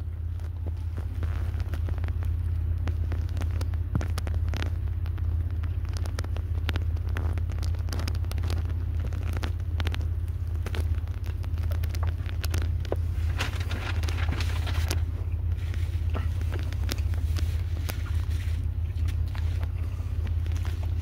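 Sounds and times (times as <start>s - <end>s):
close-up chewing: 0.0s - 21.0s
crackly clicks: 0.0s - 21.0s
low rumble: 0.0s - 21.0s.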